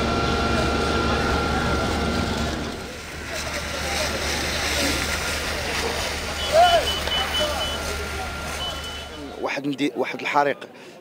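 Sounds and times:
steady background noise: 0:00.0 - 0:11.0
rapid high-pitched electronic beeping: 0:06.2 - 0:09.3.

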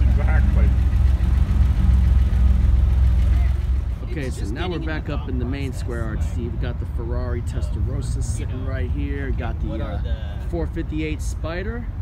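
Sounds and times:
race car engine idling: 0:00.0 - 0:11.3.

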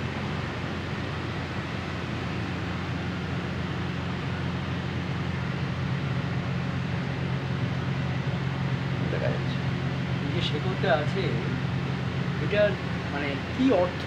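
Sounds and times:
low machine hum: 0:00.0 - 0:14.0.

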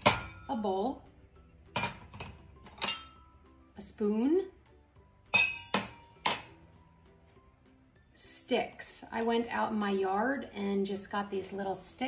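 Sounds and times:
metal bowl clinking: 0:01.7 - 0:03.3, 0:05.3 - 0:06.0.

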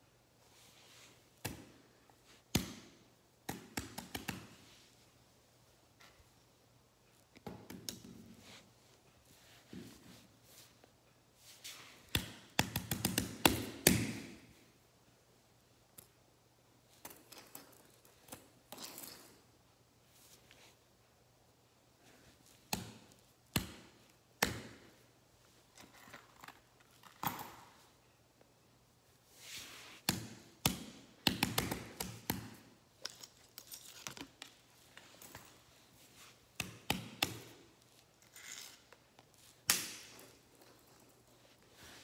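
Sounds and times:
soft rustle: 0:00.4 - 0:02.5, 0:08.2 - 0:12.1, 0:20.0 - 0:21.2, 0:29.0 - 0:30.1, 0:32.9 - 0:36.6, 0:37.5 - 0:42.0.

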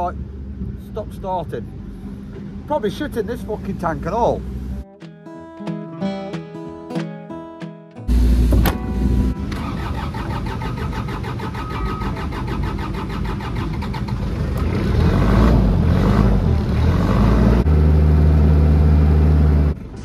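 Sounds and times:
engine cranking and starting: 0:08.1 - 0:15.5.

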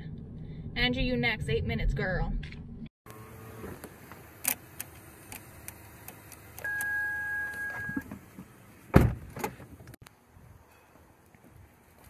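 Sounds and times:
steady electronic beep: 0:06.7 - 0:08.0.

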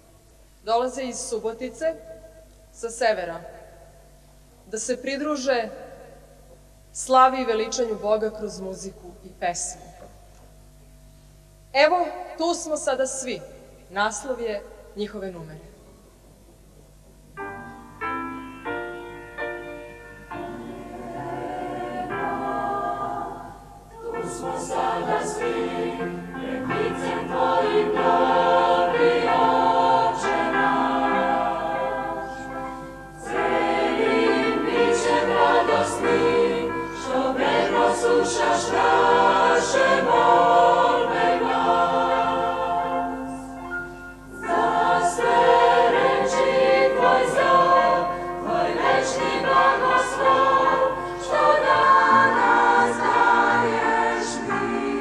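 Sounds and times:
mixed choir singing a hymn: 0:20.3 - 0:43.7, 0:44.3 - 0:55.0.

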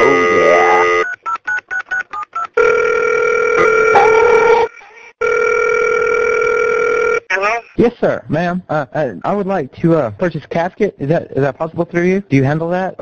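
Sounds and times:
telephone ringing tone: 0:00.0 - 0:01.3, 0:02.6 - 0:07.3.

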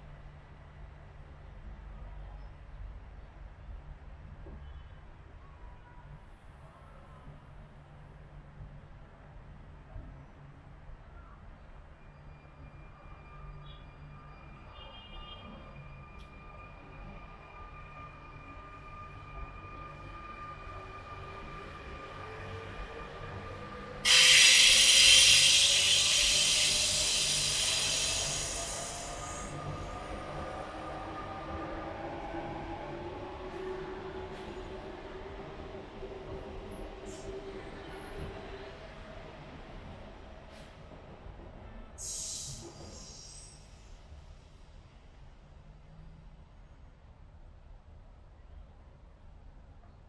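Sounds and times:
train wheel squeal: 0:11.2 - 0:31.8, 0:41.9 - 0:44.1
train whine: 0:15.5 - 0:40.8.

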